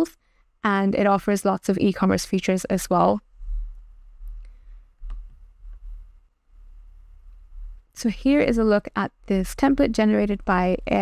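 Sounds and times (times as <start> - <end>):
computer mouse clicking: 4.3 - 5.9.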